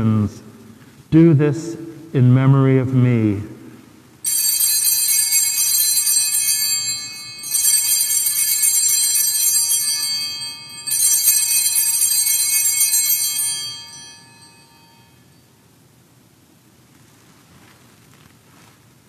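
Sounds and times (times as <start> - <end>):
altar bells ringing: 4.2 - 15.5.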